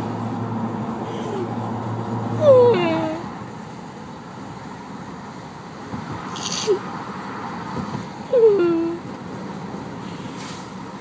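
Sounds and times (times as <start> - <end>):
woman whimpering wail: 2.4 - 3.3, 8.3 - 9.0.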